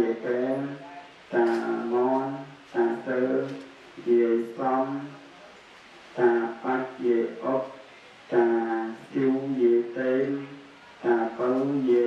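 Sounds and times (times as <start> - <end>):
monk chanting into a microphone: 0.0 - 5.3, 6.2 - 12.0.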